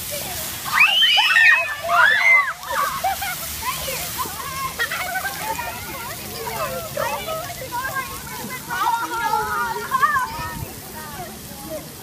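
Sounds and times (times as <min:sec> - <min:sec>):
children chattering: 0:00.0 - 0:12.0
fountain spray hiss: 0:00.0 - 0:12.0
children squealing and shouting: 0:00.6 - 0:10.7.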